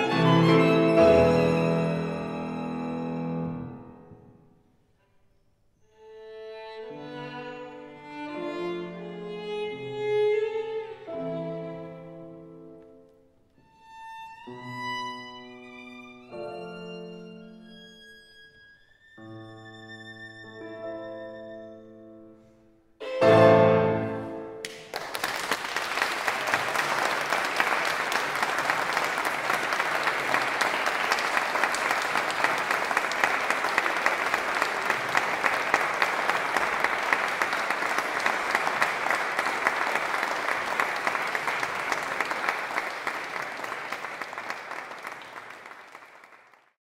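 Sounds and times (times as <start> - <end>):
audience applauding: 24.6 - 46.8.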